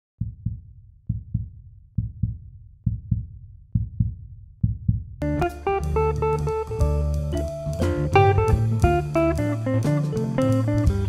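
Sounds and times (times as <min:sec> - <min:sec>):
heartbeat thumps: 0:00.2 - 0:09.6.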